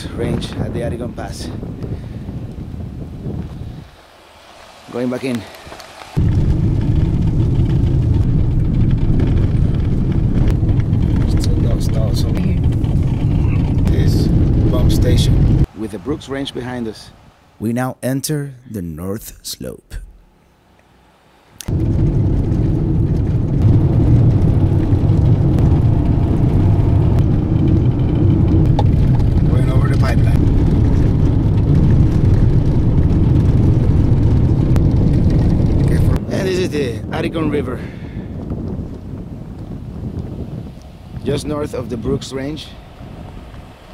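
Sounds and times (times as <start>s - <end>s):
car interior road and engine rumble: 2.4s - 17.6s, 20.1s - 36.9s, 38.5s - 43.9s.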